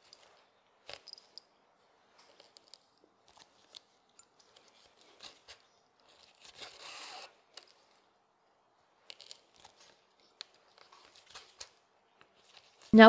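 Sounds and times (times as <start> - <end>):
thread rasping through leather: 2.4 - 8.1.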